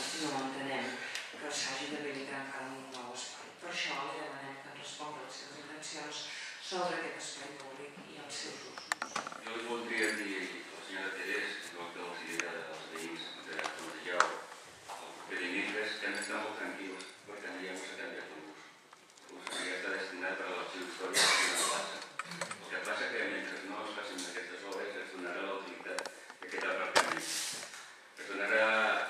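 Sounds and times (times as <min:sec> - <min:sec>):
person speaking: 0:00.0 - 0:27.4
people talking indistinctly: 0:19.2 - 0:27.5.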